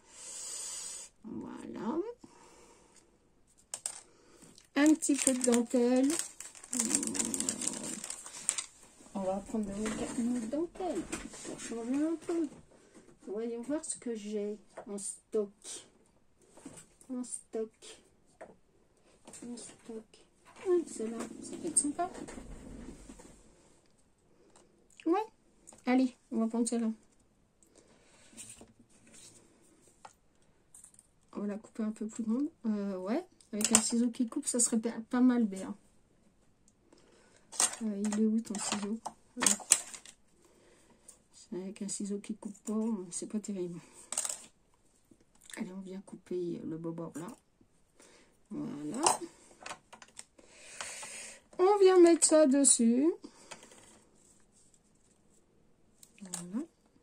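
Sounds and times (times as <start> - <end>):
faint rustling of ribbon: 3.5 - 13.4, 53.5 - 56.7.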